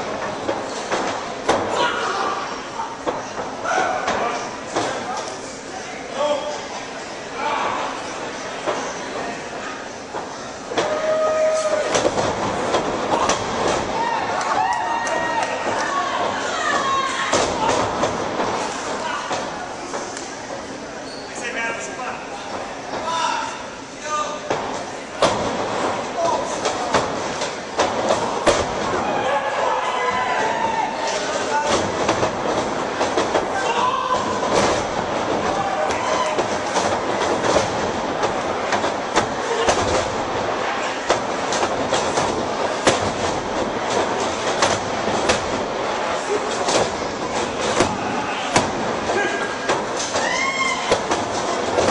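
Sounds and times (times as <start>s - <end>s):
crowd chatter and shouting: 0.0s - 51.9s.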